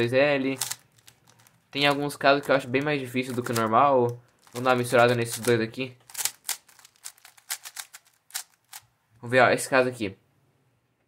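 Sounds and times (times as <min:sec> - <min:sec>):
puzzle cube clicking: 0:00.5 - 0:08.9.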